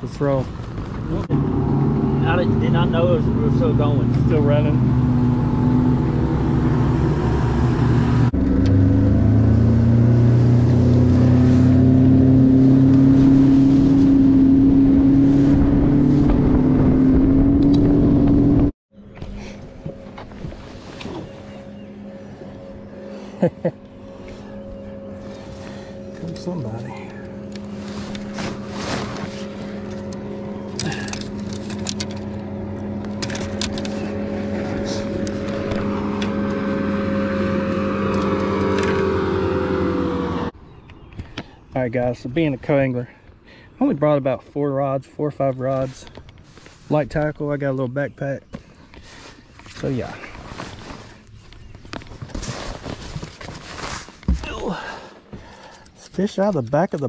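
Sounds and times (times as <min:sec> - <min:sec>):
outboard motor running fast: 0:01.4 - 0:40.5
wind and water noise: 0:10.9 - 0:23.4
fishing rods clicking and knocking: 0:30.7 - 0:32.4.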